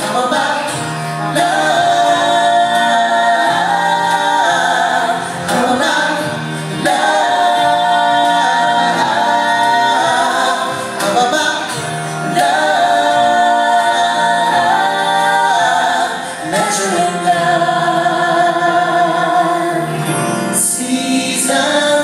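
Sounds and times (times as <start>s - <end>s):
live band playing: 0.0s - 22.0s
singers holding long notes: 0.0s - 22.0s.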